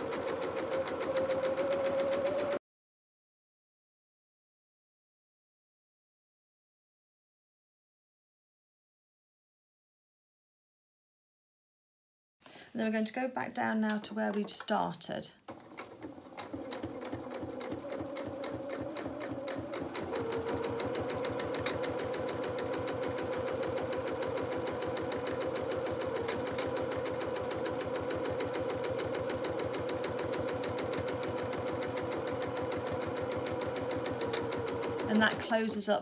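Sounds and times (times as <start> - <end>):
sewing machine stitching: 0.0 - 2.6, 15.5 - 35.9.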